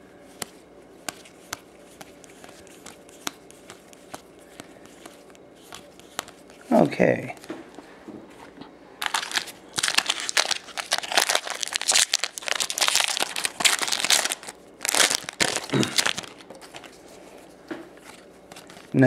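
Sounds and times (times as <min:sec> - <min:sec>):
foil wrapper crinkling and tearing: 0:09.0 - 0:16.9.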